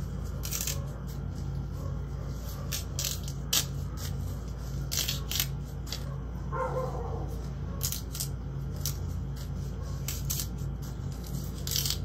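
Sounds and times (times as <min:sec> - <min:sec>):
steady low hum: 0:00.0 - 0:12.0
leaves rustling and snapping: 0:02.6 - 0:04.1.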